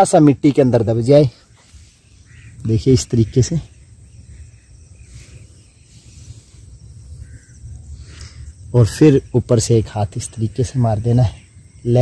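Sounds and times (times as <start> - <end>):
faint insect chirping: 0.0 - 12.0.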